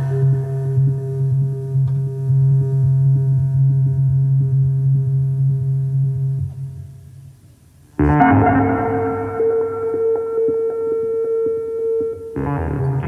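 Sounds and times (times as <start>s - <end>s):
synthesizer low drone note: 8.0s - 13.0s.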